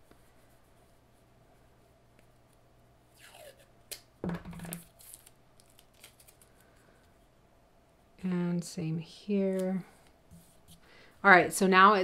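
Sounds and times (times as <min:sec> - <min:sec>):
tape ripping: 0:03.2 - 0:06.5.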